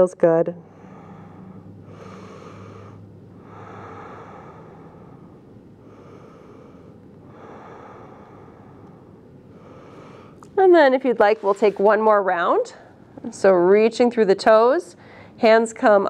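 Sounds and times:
woman breathing softly: 0.6s - 10.6s, 15.0s - 15.4s.

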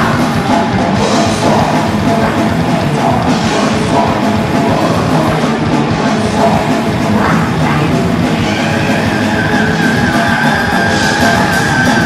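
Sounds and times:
distorted electric guitars: 0.0s - 12.0s
drum kit: 0.0s - 12.0s.

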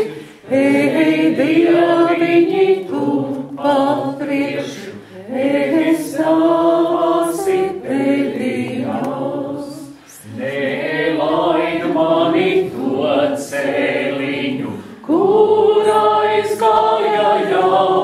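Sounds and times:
group singing unaccompanied: 0.0s - 18.0s.

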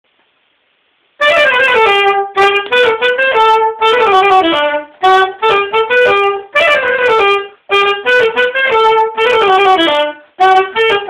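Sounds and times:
saxophone playing polka: 1.2s - 11.0s.

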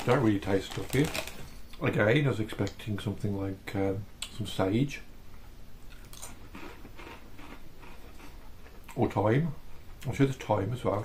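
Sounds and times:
potato crisp crunching: 0.0s - 1.5s, 5.9s - 9.2s.

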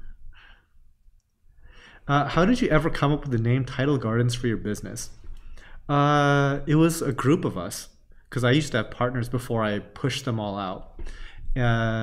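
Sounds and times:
man breathing: 0.0s - 0.9s, 1.5s - 2.1s, 5.3s - 5.9s, 11.0s - 11.6s.

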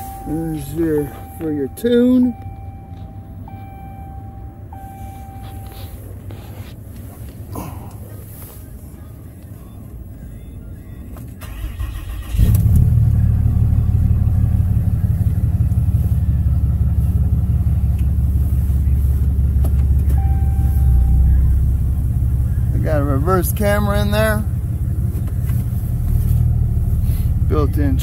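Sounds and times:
diesel engine idling: 0.0s - 28.0s.

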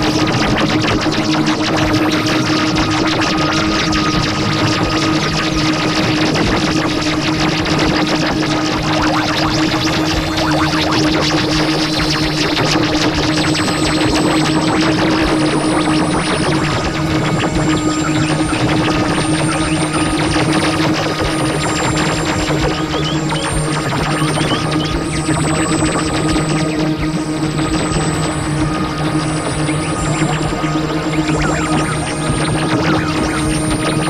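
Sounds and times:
low two-note drone: 0.0s - 34.0s
noisy synthesizer texture: 0.0s - 34.0s.

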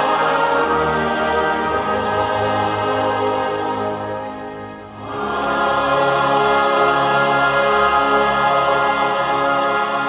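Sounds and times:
church choir singing: 0.0s - 10.0s
orchestral accompaniment: 0.0s - 10.0s.

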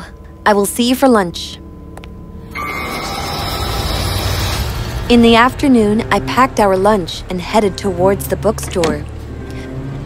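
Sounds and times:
faint background music: 0.0s - 10.0s
ominous rumbling horror effect: 2.3s - 10.0s.

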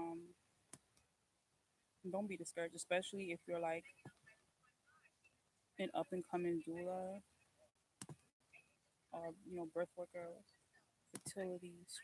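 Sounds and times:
woman saying um: 5.8s - 7.2s, 11.3s - 12.0s.

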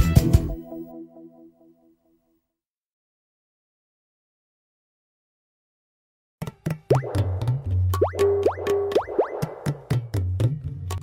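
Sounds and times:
bouncy cartoon music: 6.4s - 11.0s.

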